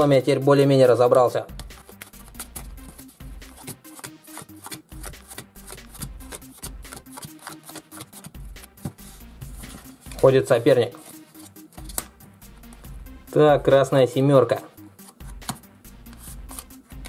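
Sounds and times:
light background music: 0:00.0 - 0:17.0
playing cards being shuffled: 0:01.2 - 0:12.9, 0:14.5 - 0:17.0.

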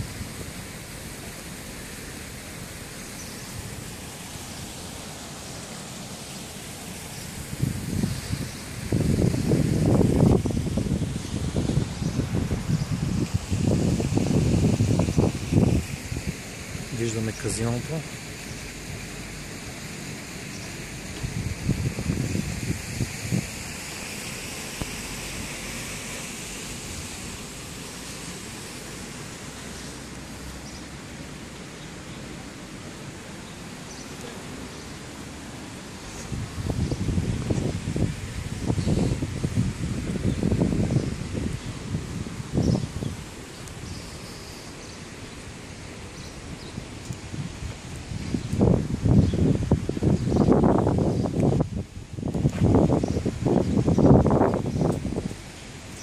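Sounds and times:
steady street hiss: 0:00.0 - 0:56.0
wind buffeting microphone: 0:06.7 - 0:17.1, 0:20.8 - 0:27.2, 0:36.1 - 0:44.0, 0:46.1 - 0:56.0.

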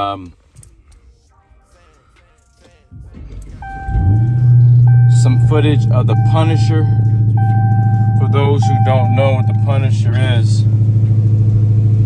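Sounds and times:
car engine starting and idling: 0:00.0 - 0:12.0.

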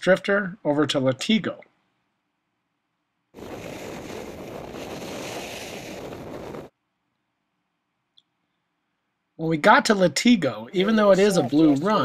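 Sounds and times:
skis sliding on hard snow: 0:03.4 - 0:06.7
wind on microphone: 0:03.4 - 0:06.7.

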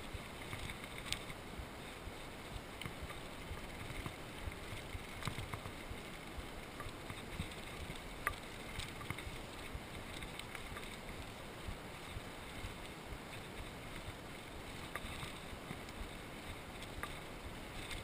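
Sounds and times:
bike tyre rumble on gravel: 0:00.0 - 0:18.0.

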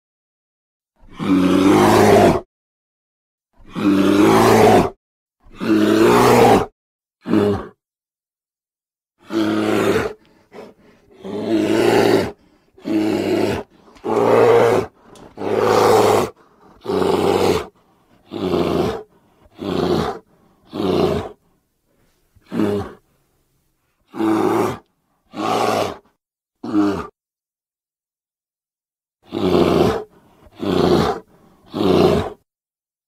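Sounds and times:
bear roaring: 0:01.0 - 0:02.5, 0:03.6 - 0:07.8, 0:09.2 - 0:21.4, 0:22.4 - 0:23.0, 0:24.1 - 0:26.0, 0:26.6 - 0:27.2, 0:29.2 - 0:32.4.

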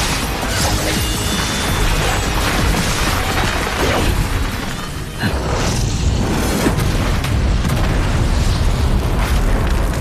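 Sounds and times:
low booming explosions: 0:05.4 - 0:10.0.

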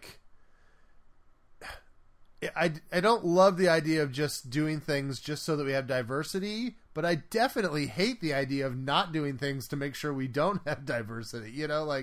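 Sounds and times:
person sharp breath: 0:00.3 - 0:01.8.

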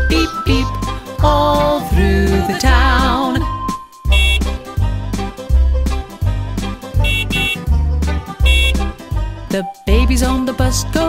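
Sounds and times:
instrumental children's song: 0:00.0 - 0:11.0
cartoon bus horn toots: 0:04.1 - 0:04.7, 0:07.0 - 0:07.7, 0:08.4 - 0:08.9.

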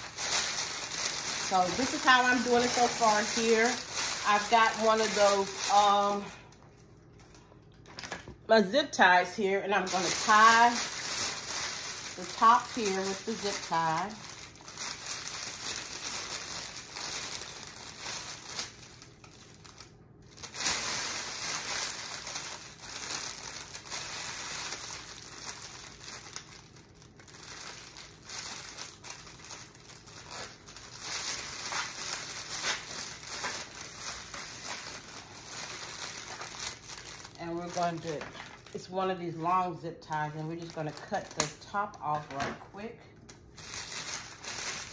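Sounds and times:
plastic bag crinkling: 0:00.0 - 0:44.9.

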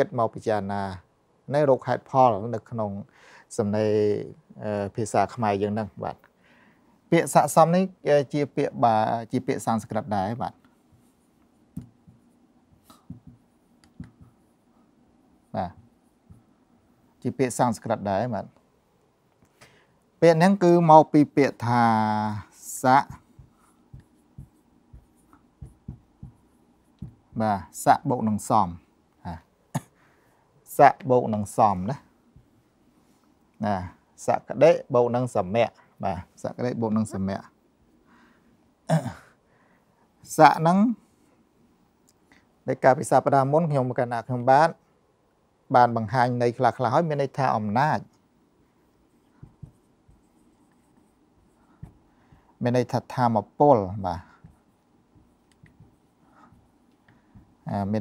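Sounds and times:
marker pen writing on whiteboard: 0:09.8 - 0:17.6, 0:21.5 - 0:28.5, 0:31.3 - 0:32.8, 0:48.0 - 0:58.0.

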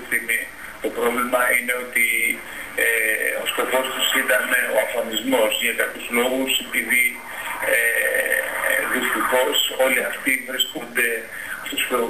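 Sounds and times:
man speaking through tv speaker: 0:00.0 - 0:12.0.

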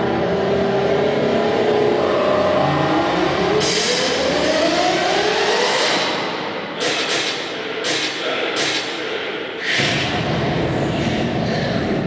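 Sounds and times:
rising pitch sweep: 0:00.0 - 0:07.7.

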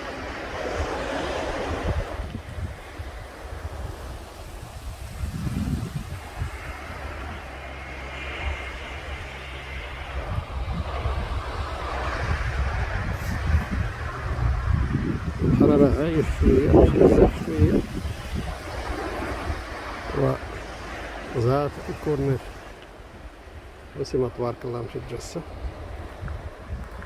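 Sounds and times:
waves breaking over rocks: 0:00.0 - 0:27.0
wind buffeting microphone: 0:00.0 - 0:27.0.

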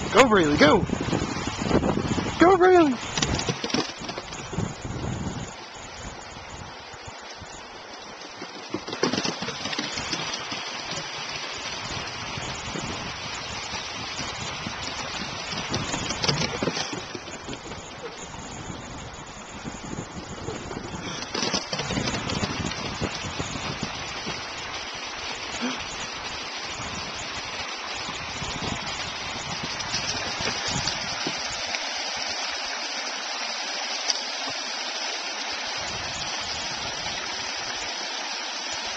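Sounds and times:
steady rushing noise: 0:00.0 - 0:07.6
creek water rushing: 0:00.0 - 0:38.9
dog running on wooden boards: 0:03.0 - 0:04.7, 0:08.1 - 0:11.5, 0:14.7 - 0:18.2, 0:20.5 - 0:23.2.

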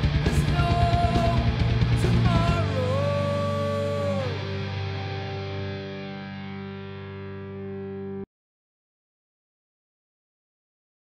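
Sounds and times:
high guitar note sliding down: 0:00.0 - 0:08.2
distorted electric guitar chord: 0:00.0 - 0:08.3.

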